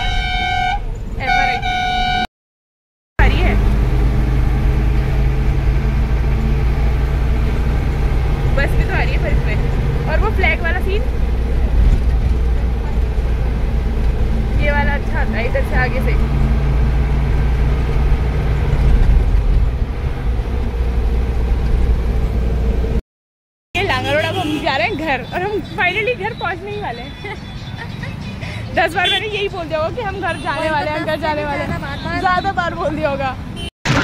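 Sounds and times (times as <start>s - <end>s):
road noise: 0.0s - 2.3s, 3.2s - 23.0s, 23.8s - 34.0s
bus engine humming: 3.2s - 23.0s, 23.8s - 34.0s.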